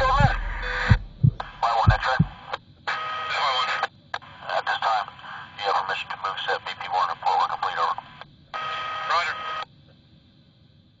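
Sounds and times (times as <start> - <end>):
voice over two-way radio: 0.0 - 2.3, 3.2 - 8.2, 8.9 - 9.6
steady radio tone: 0.0 - 9.6
faint radio hiss: 0.0 - 11.0.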